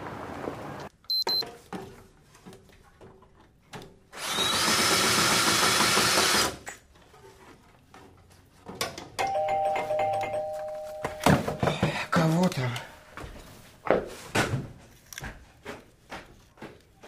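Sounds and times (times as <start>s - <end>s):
cordless drill whining: 4.2s - 6.5s
two-tone doorbell: 9.2s - 11.9s.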